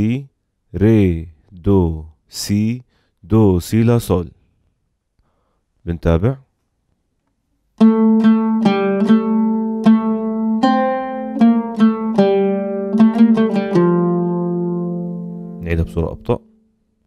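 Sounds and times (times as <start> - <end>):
oud melody plucked: 7.8 - 16.6.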